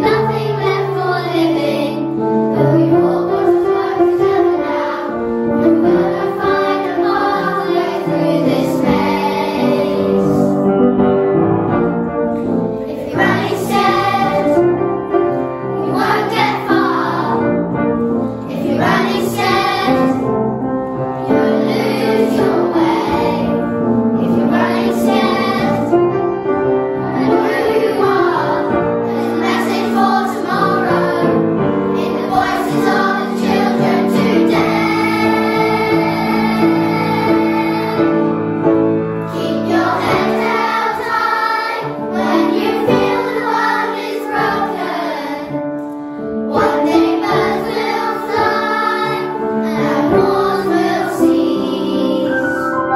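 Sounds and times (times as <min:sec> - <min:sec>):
children's choir singing: 0:00.0 - 0:52.9.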